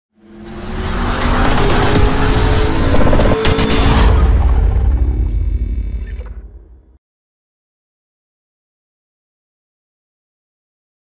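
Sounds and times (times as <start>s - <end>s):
low rumble: 1.6s - 7.0s.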